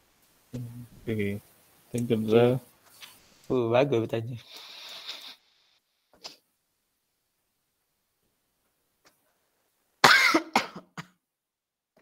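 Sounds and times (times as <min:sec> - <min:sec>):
person coughing: 0:10.0 - 0:11.2.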